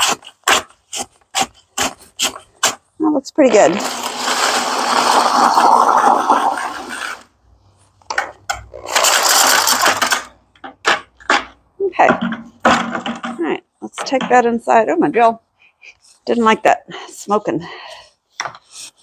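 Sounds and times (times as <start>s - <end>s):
drill mixing grout: 3.5s - 7.4s, 8.7s - 10.2s
paddle scraping bucket: 3.5s - 7.4s
knocks: 10.6s - 14.5s.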